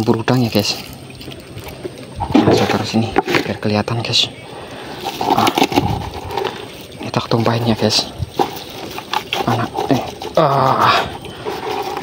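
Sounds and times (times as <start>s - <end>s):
shrimp clicking and pattering: 4.7s - 12.0s
net rustling over plastic basin: 4.8s - 12.0s.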